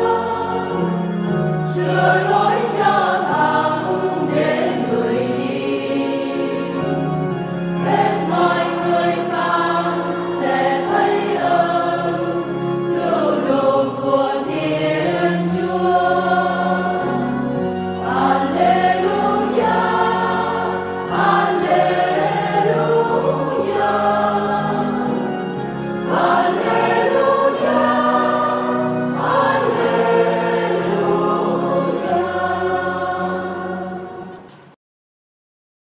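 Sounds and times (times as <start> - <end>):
church choir singing: 0.0 - 34.8
instrumental accompaniment: 0.0 - 34.8.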